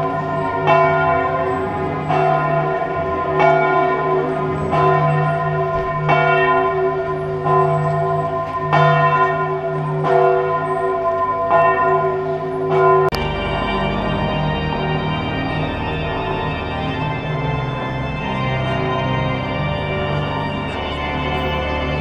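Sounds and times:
church bells ringing: 0.0 - 22.0.

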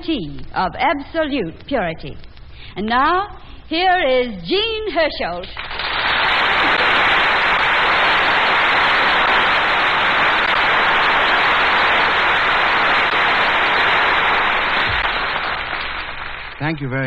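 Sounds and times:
audience applauding: 5.6 - 17.0.

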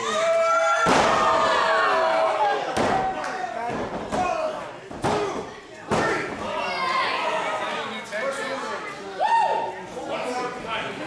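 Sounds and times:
people shouting and yelling: 0.0 - 10.4
heavy slam on wrestling ring: 0.8 - 1.5.

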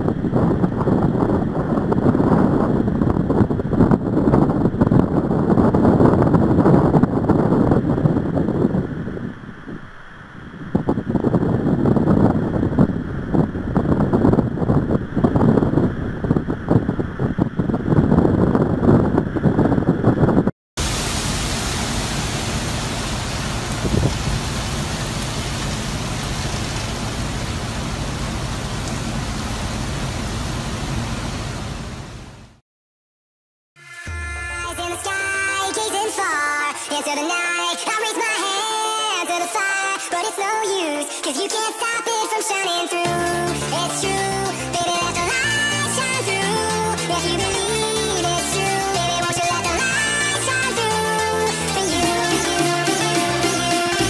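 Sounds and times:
wind buffeting microphone: 0.0 - 27.6
steady hiss: 20.8 - 31.4.

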